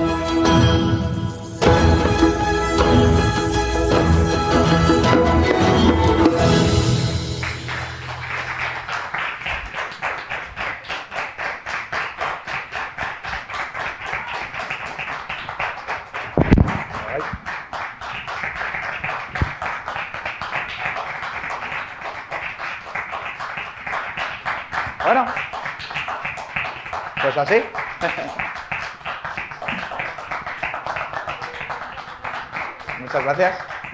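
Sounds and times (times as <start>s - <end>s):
audience applauding: 4.8s - 33.9s.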